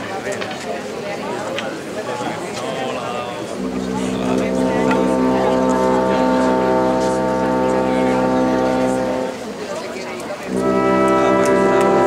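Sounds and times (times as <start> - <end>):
crowd voices: 0.0 - 12.0
low horn-like held tone: 3.4 - 9.5, 10.4 - 12.0.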